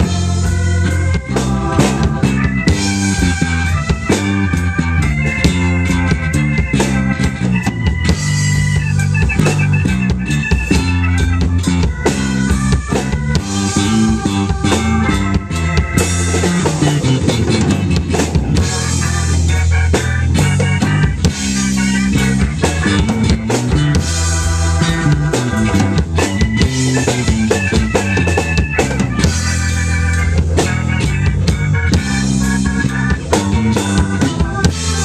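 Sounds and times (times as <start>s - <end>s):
drum strikes: 0.0s - 35.0s
electric bass line: 0.0s - 35.0s
organ chords: 0.0s - 35.0s.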